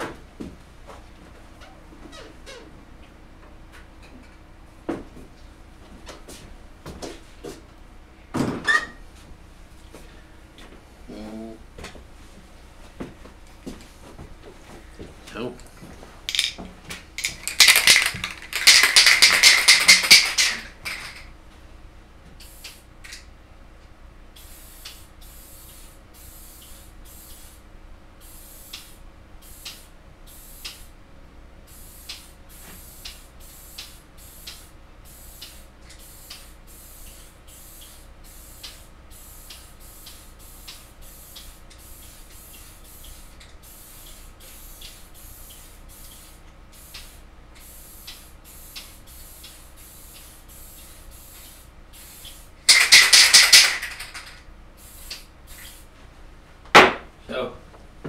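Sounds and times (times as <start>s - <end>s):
aerosol spray can hissing: 17.2s - 21.1s, 24.4s - 27.6s, 28.2s - 30.9s, 31.7s - 55.9s.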